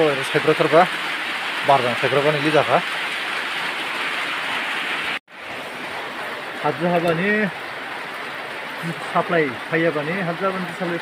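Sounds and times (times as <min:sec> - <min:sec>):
rain falling: 0:00.0 - 0:11.0.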